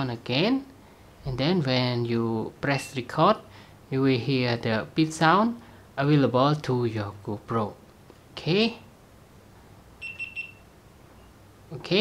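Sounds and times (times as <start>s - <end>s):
short high camera beeps: 10.0s - 11.4s.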